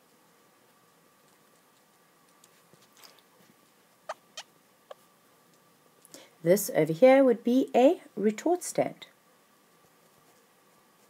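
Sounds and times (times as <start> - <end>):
stylus squeaks: 4.1 - 5.0.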